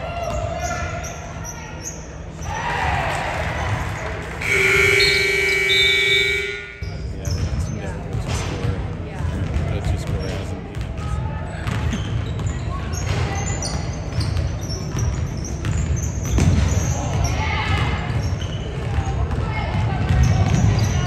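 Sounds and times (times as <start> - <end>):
voices echoing: 3.2 - 11.5
scoreboard horn: 4.4 - 7.0
basketballs bouncing on court: 4.4 - 21.0.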